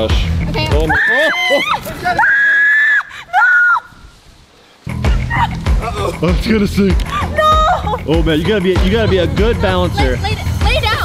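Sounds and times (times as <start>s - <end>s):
woman screaming: 0.9s - 4.1s, 5.1s - 6.2s, 7.2s - 8.0s.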